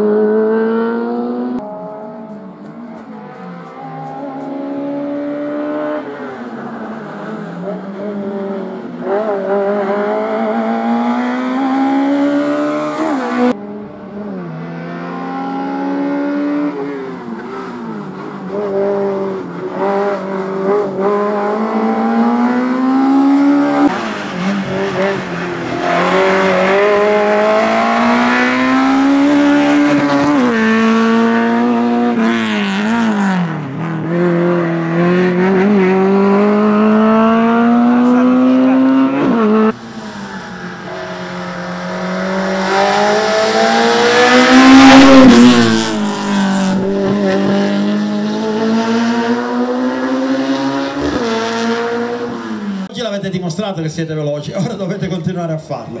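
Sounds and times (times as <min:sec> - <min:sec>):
car engine revving: 0:00.0 - 0:52.9.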